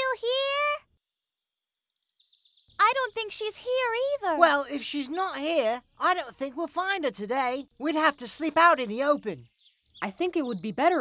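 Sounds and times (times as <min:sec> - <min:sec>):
faint high bird chirping: 0:00.0 - 0:11.0.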